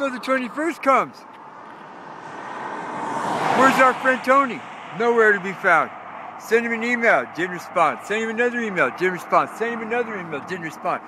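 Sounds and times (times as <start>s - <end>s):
vehicle approaching on highway: 0.0s - 11.0s.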